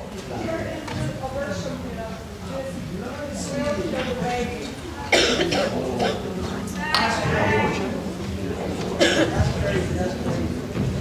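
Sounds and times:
loud cough: 5.1s - 6.3s, 9.0s - 9.5s.

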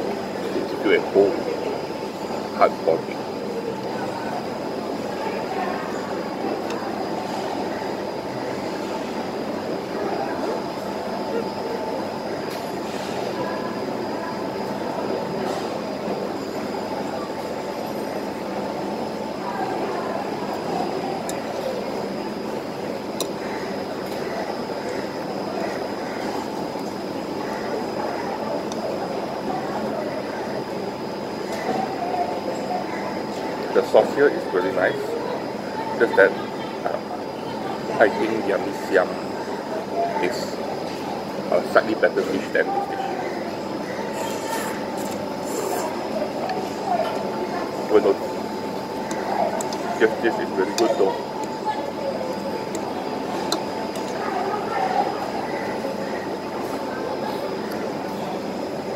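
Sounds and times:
crowd chatter: 0.0s - 58.9s
mechanical hum: 0.0s - 58.9s.

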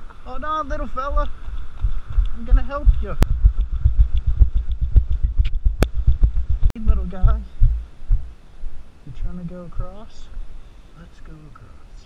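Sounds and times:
motorcycle engine low throb: 1.8s - 8.4s.

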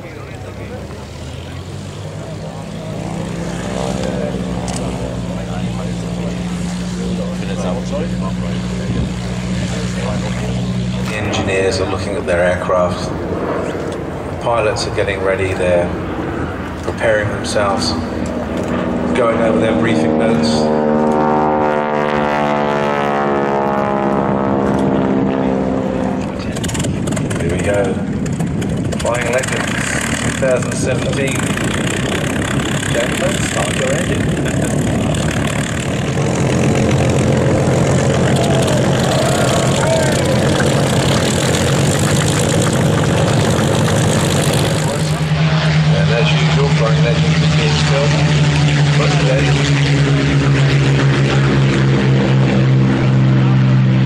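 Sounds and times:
aircraft engine starting: 0.0s - 54.0s
piston aircraft engines running: 0.0s - 54.0s
propeller plane flying overhead: 0.0s - 54.0s.

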